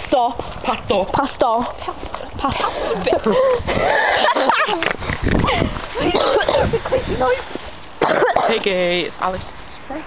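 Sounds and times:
young people laughing: 1.8s - 7.3s.

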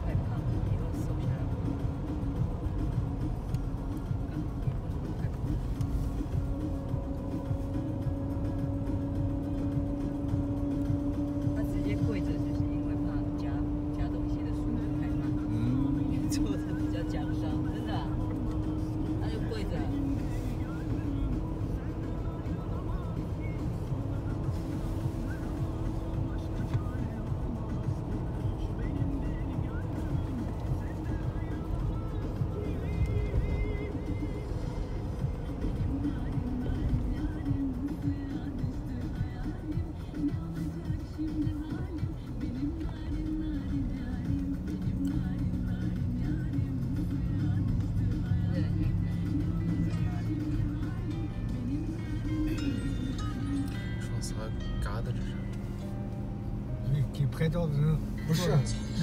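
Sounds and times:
car engine drone: 0.0s - 59.0s
road noise: 0.0s - 59.0s.

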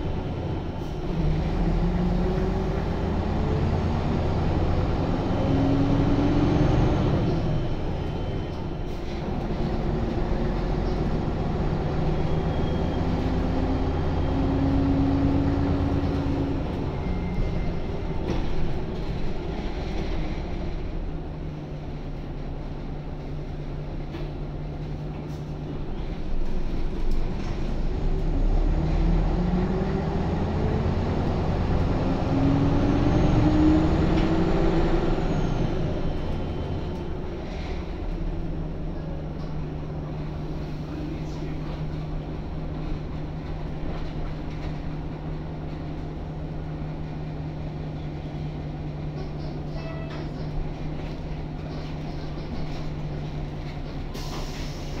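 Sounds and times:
bus diesel engine from inside: 0.0s - 55.0s.

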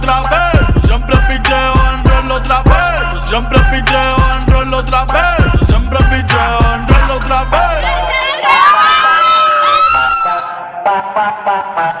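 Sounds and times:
young women shouting and cheering: 6.8s - 10.6s.

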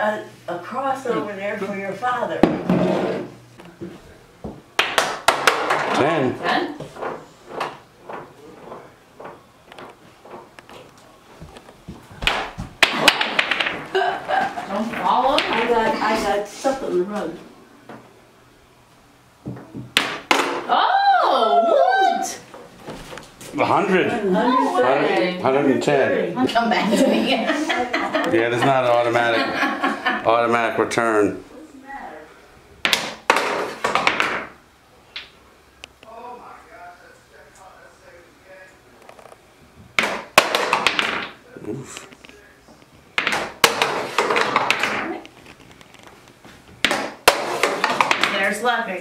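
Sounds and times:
ball rolling on rug thumps: 2.4s - 4.6s, 6.8s - 12.8s
ball rolling on wood floor: 2.4s - 18.0s, 32.8s - 34.6s, 39.0s - 41.4s, 42.7s - 48.7s
ball knocking: 4.4s - 6.0s, 12.2s - 14.0s, 14.8s - 16.2s, 19.4s - 20.7s, 32.8s - 34.6s, 39.9s - 41.4s, 43.2s - 45.3s, 46.8s - 48.6s.

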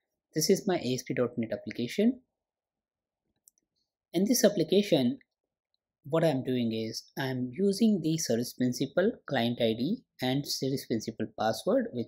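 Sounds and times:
person speaking: 0.3s - 2.4s, 3.4s - 5.4s, 6.0s - 12.0s.

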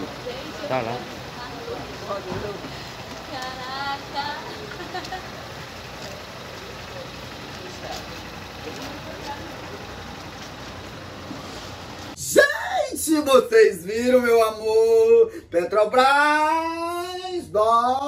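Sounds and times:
voices of bystanders: 0.0s - 14.9s
low street rumble: 0.0s - 18.0s.

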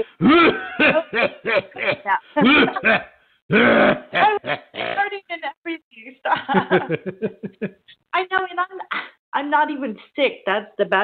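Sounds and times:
woman coughing: 0.0s - 5.1s.

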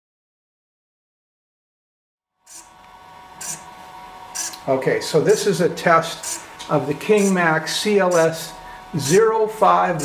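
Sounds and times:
servo whirring: 2.5s - 4.7s, 6.0s - 9.2s
faint steady hum: 2.5s - 10.0s.

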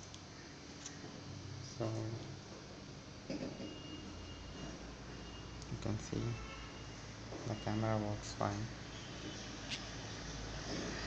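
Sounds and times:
room noise and hiss: 0.0s - 11.0s.

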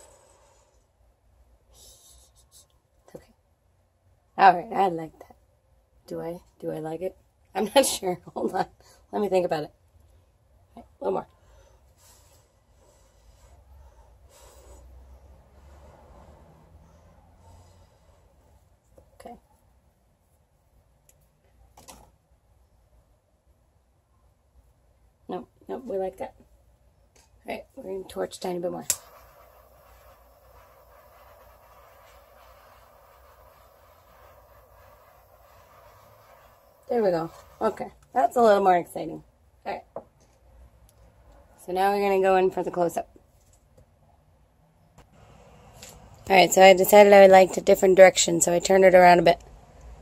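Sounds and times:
faint puffs of breath through straw: 0.0s - 1.0s, 1.6s - 2.8s, 11.4s - 18.7s, 29.0s - 37.6s
torch flame hissing: 27.9s - 38.7s.

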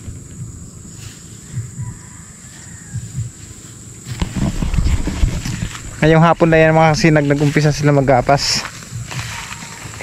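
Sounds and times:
faint high whine: 0.0s - 10.0s
wind rumbling on microphone: 0.0s - 10.0s.

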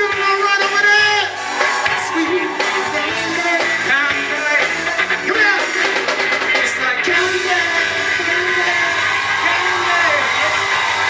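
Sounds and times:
shouted voices: 0.0s - 6.0s, 7.0s - 11.0s
audience cheering and applauding: 0.0s - 11.0s.

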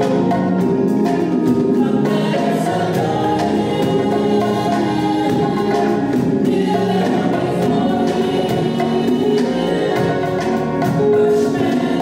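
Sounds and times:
drums and percussion: 0.0s - 12.0s
gospel choir singing: 0.0s - 12.0s.

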